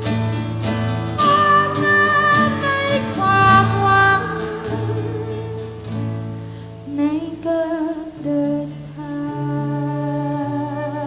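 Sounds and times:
classical guitar accompaniment: 0.0s - 11.0s.

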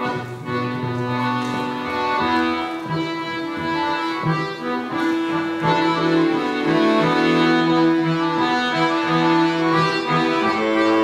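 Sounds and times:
cello: 0.0s - 11.0s
piano accordion: 0.0s - 11.0s.

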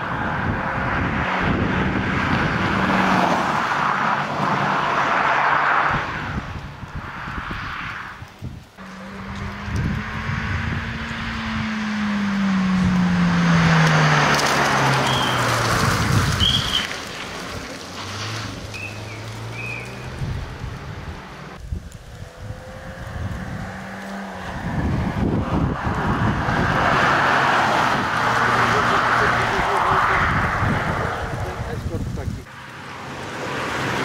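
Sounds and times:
rally car engine: 0.0s - 8.2s, 8.8s - 34.0s.

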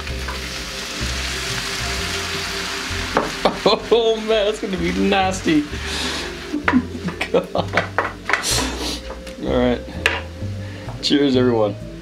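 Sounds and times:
food sizzling in a frying pan: 0.0s - 10.5s
background music with bass: 0.0s - 12.0s.

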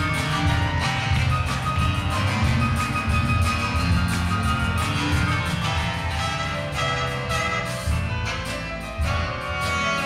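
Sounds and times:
lively grand piano piece: 0.0s - 10.0s.

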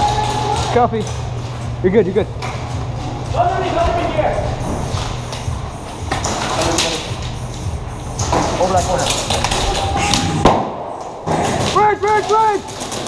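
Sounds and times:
muffled voices: 0.0s - 10.6s.

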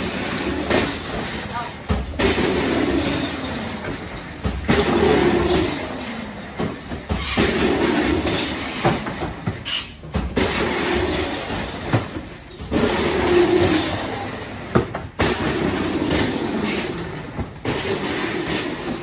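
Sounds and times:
boxes rolling on roller conveyor: 0.0s - 19.0s.

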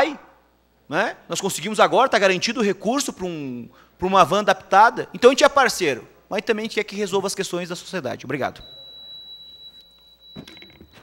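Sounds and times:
high-pitched electronic beep: 8.6s - 11.0s.

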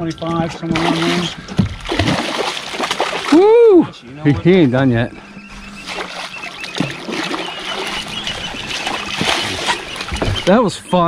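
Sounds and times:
fish splashing at water surface: 0.7s - 3.5s, 5.8s - 10.5s.

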